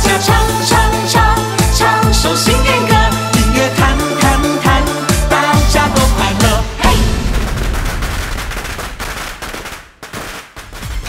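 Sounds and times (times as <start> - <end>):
firecrackers crackling: 6.8 - 11.0.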